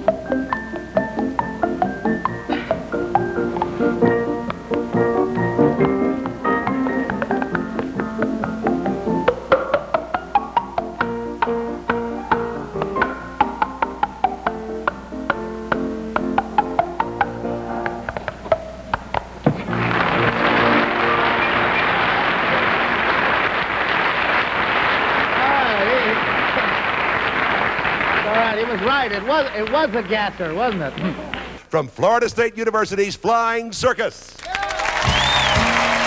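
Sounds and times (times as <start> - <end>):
tune made with hands and mouth: 0.0 - 19.4, 35.0 - 36.0
audience applause: 19.6 - 31.6, 34.4 - 36.0.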